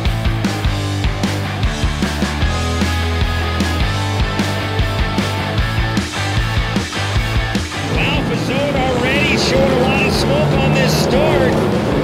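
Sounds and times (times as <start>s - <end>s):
racing engines revving: 0.0s - 12.0s
rock music: 0.0s - 12.0s.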